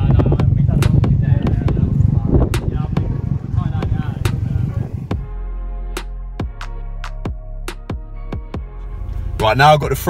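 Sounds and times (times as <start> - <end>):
car engine rumbling: 0.0 - 5.4, 8.6 - 10.0.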